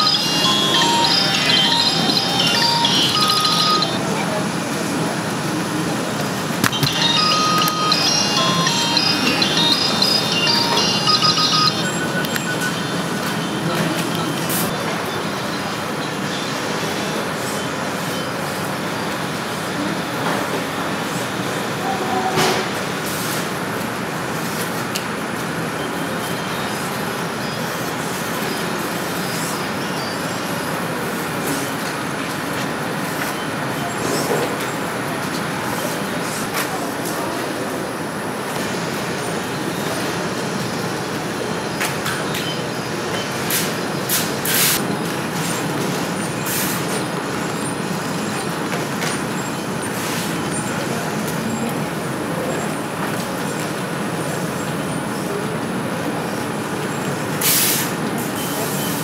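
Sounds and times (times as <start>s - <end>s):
factory hall rushing noise: 0.0s - 59.0s.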